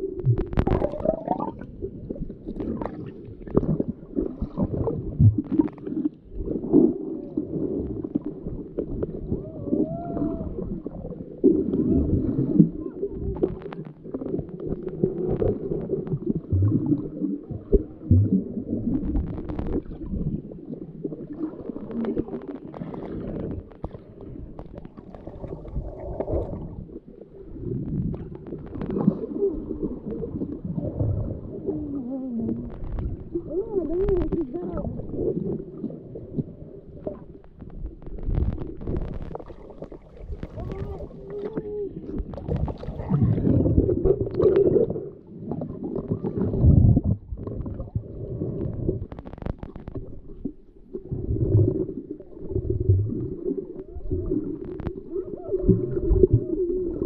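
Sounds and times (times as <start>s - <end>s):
underwater rumbling and gurgling: 0.0s - 57.0s
underwater clicks: 0.2s - 1.7s, 13.3s - 20.3s, 32.5s - 35.5s, 36.4s - 50.7s.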